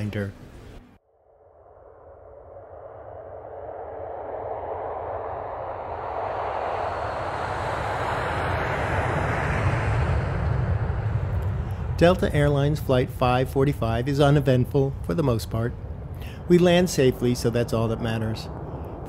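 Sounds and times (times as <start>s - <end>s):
jet engine rushing: 1.8s - 19.0s.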